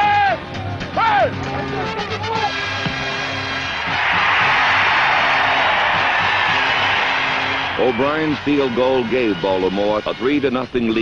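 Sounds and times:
film music: 0.3 - 10.6
stadium crowd cheering: 2.0 - 10.1.

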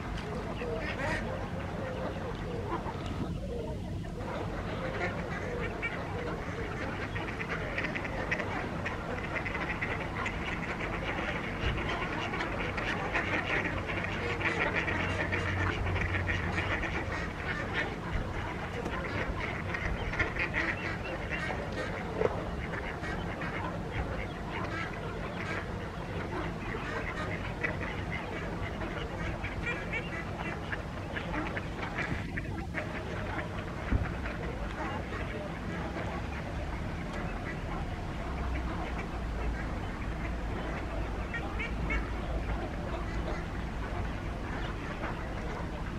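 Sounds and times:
ducks quacking: 0.0 - 45.9.

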